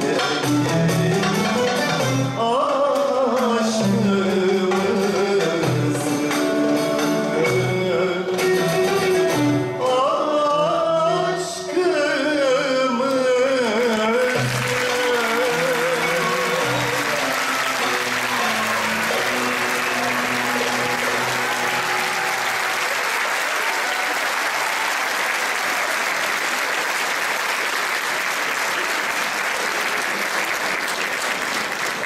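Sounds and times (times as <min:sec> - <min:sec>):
audience applauding: 0:13.6 - 0:32.0
ensemble instrumental notes: 0:14.4 - 0:22.7.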